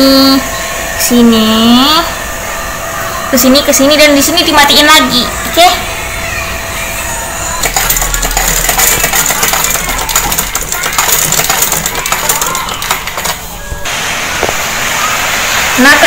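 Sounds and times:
sewing machine running: 7.6s - 13.4s.

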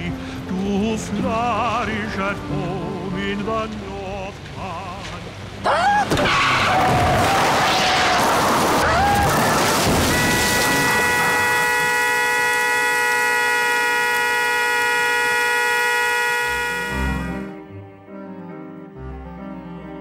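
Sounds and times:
low slow string music: 0.0s - 5.7s, 12.6s - 20.0s
car horn blaring: 9.7s - 17.6s.

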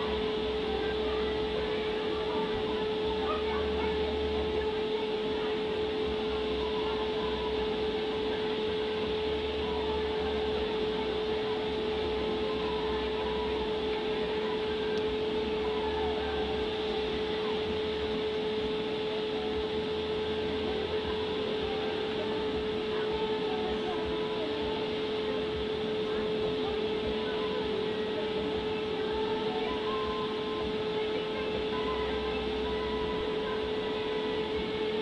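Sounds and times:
fan motor humming: 0.0s - 35.0s.

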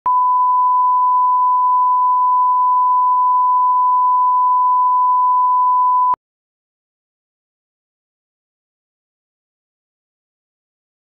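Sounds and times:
pure test tone beep: 0.1s - 6.2s.

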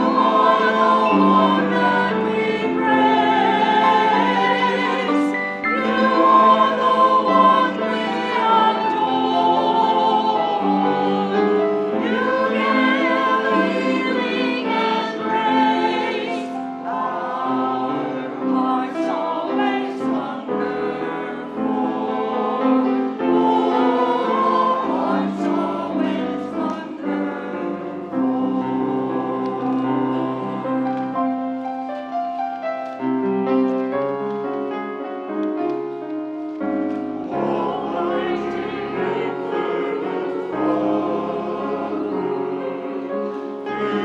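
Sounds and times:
choir singing slow anthem: 0.0s - 31.5s, 37.0s - 44.0s
grand piano accompaniment: 0.0s - 44.0s.

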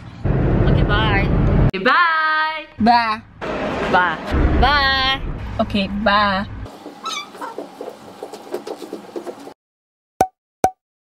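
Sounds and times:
light irregular knocks: 6.7s - 9.5s.

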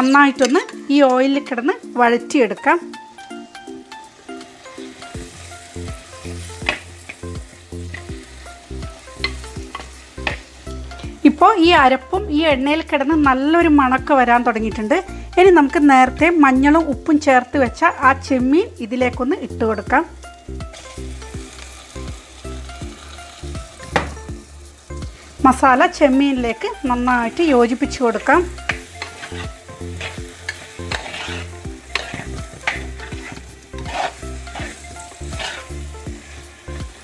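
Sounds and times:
food sizzling in a pot: 0.0s - 37.0s
soft background music: 0.0s - 37.0s
steel spoon scraping a pot: 28.0s - 36.8s.

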